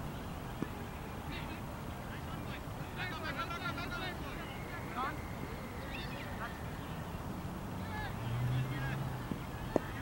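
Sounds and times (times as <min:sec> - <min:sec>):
distant voices: 0:00.0 - 0:10.0
high chirping calls: 0:04.3 - 0:07.0.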